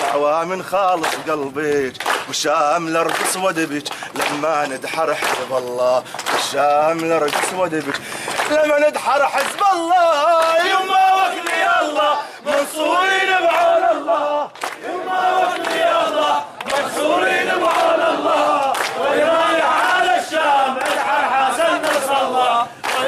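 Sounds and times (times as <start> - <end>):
hand-clapping: 0.0 - 23.0
men chanting slogans: 0.0 - 23.0.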